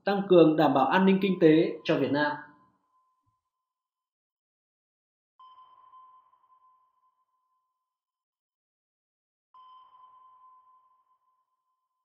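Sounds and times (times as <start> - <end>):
faint ringing ping: 9.6 - 12.0.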